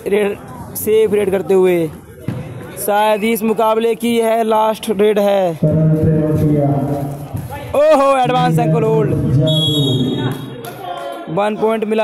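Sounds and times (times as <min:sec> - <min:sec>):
man speaking: 0:02.8 - 0:10.4.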